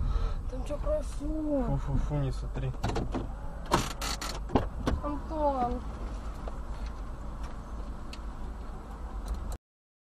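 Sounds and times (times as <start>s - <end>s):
low rumble inside car cabin: 0.0s - 9.6s
faint irregular clicks: 6.3s - 9.6s.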